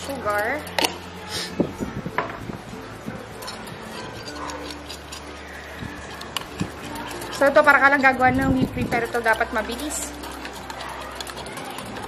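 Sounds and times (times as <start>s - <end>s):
whisk beating in glass bowl: 3.1s - 12.0s
fork beating egg whites: 3.2s - 12.0s.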